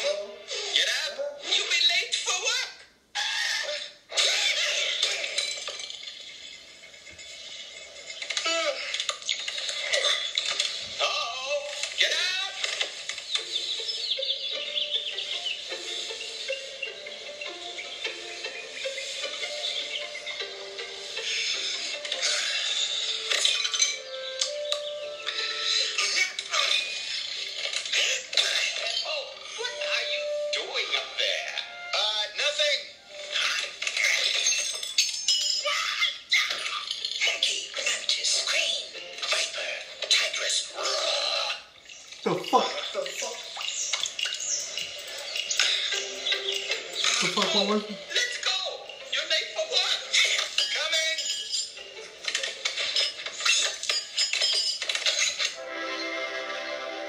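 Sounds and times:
cartoon sound effects: 3.2 - 5.4
soundtrack music through phone speaker: 4.1 - 57.0
high chirping sounds: 13.0 - 21.9, 41.8 - 48.1.

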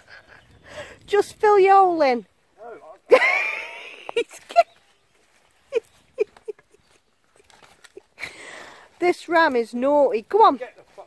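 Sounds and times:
breathy rush: 8.2 - 9.0.

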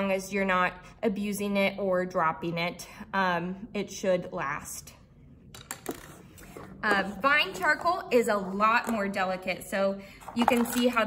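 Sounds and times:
pencils and plastic cases clicking: 10.2 - 11.0.

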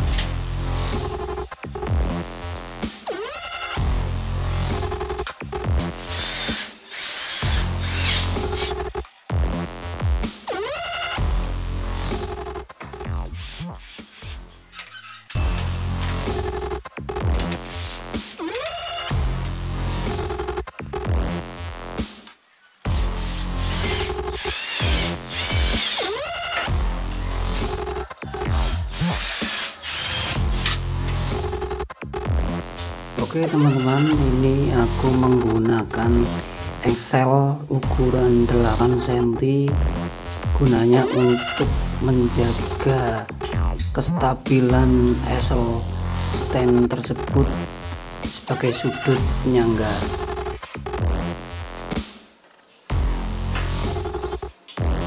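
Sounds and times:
cordless drill driving screw into wood: 6.1 - 8.3, 23.7 - 26.2, 28.6 - 30.8.

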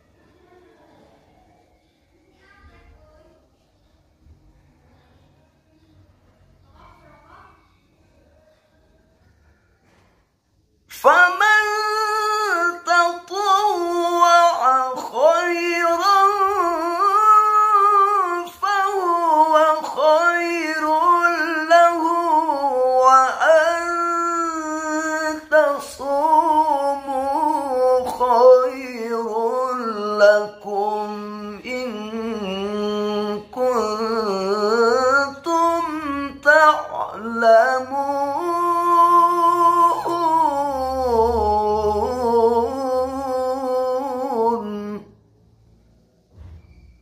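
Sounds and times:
man chanting melodically: 10.9 - 45.2.

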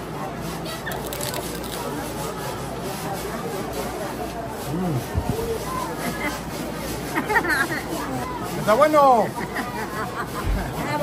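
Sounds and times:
restaurant chatter: 0.0 - 11.0
crunching while chewing: 0.9 - 1.8.

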